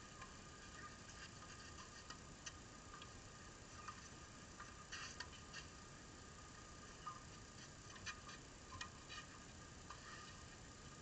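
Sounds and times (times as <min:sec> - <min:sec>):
soft ticks: 0:00.0 - 0:05.8, 0:06.5 - 0:10.6
faint high hum: 0:00.0 - 0:11.0.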